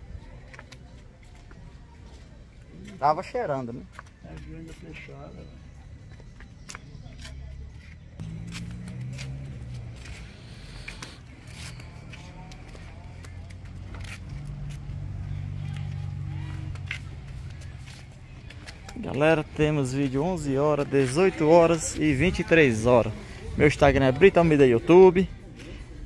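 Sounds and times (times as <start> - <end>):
footsteps on concrete steps: 3.8 - 22.5
indistinct background voices: 3.8 - 26.0.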